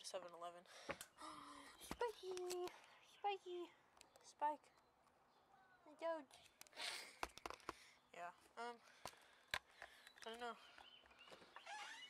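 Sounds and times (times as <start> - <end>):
sharp clicks: 1.8 - 2.8.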